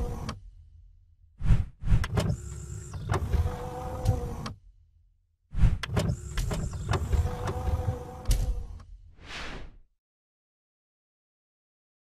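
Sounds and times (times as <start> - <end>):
mechanical sliding whir with clicks: 0.0 - 0.4, 1.9 - 4.6, 5.7 - 8.9.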